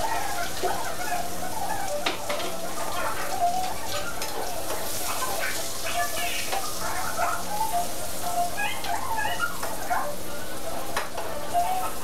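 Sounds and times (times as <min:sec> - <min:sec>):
food sizzling in a pan: 0:03.5 - 0:12.0.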